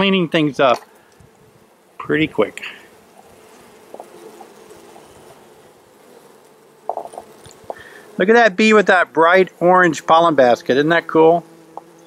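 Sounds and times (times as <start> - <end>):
bees humming: 0.0 - 12.0.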